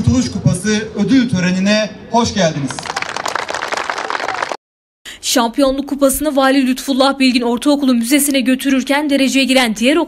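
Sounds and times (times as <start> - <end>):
crowd applauding: 2.6 - 4.6.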